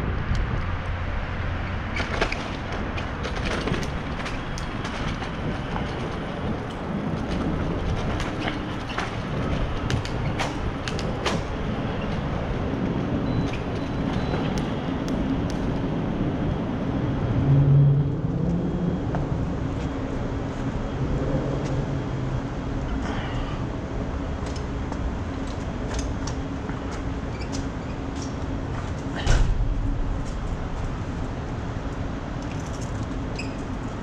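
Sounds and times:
bicycle tyres rolling on pavement: 0:00.0 - 0:34.0
low hum: 0:00.0 - 0:34.0
wind noise: 0:00.0 - 0:34.0
clicks and rattles from bumps: 0:01.9 - 0:12.8.

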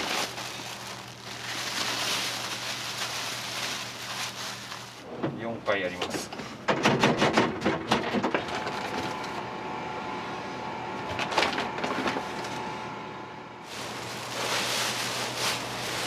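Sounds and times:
flour rustling in paper sack: 0:00.0 - 0:05.0, 0:13.6 - 0:16.0
steady machine hum: 0:00.0 - 0:05.7, 0:08.5 - 0:16.0
plastic scoop clattering and scraping: 0:13.7 - 0:16.0.

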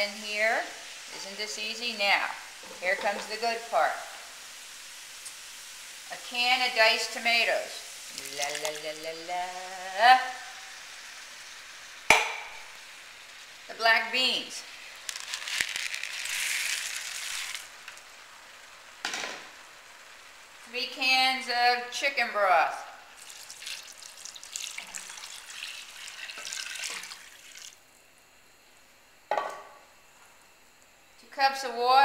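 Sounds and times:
beans pouring into a pot: 0:06.4 - 0:09.2, 0:14.2 - 0:18.1, 0:23.2 - 0:27.8.

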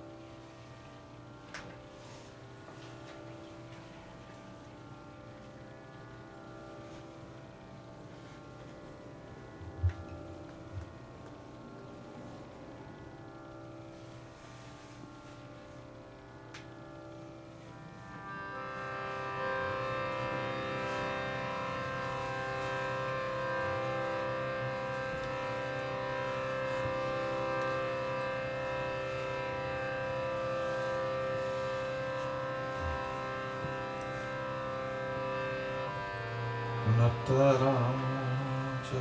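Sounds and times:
harmonium sustained chord: 0:00.0 - 0:39.0.

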